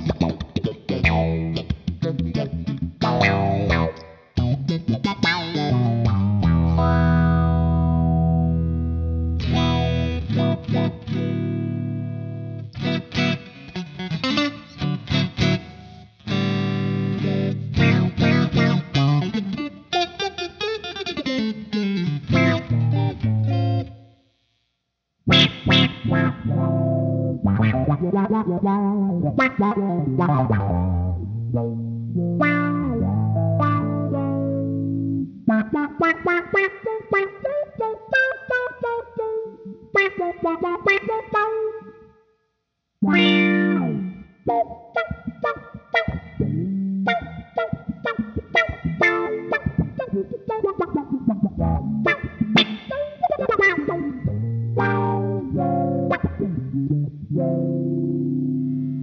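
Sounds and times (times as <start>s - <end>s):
funk electric guitar: 0.0s - 24.1s, 25.3s - 42.0s, 43.0s - 59.0s.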